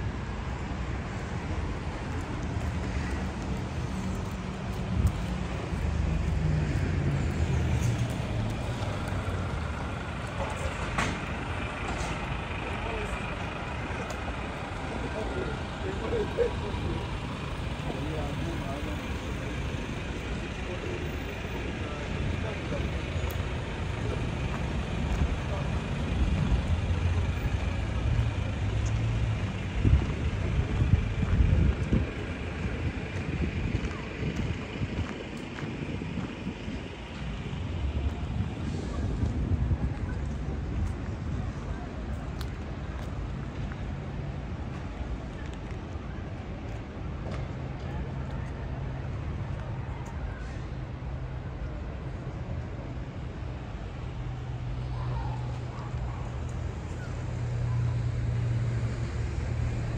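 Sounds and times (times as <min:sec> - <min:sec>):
passers-by talking: 0:00.0 - 0:59.9
street traffic rumble: 0:00.0 - 0:59.9.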